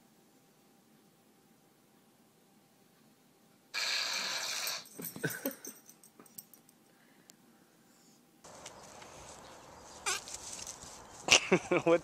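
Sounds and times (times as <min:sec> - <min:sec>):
background hiss: 0:00.0 - 0:12.0.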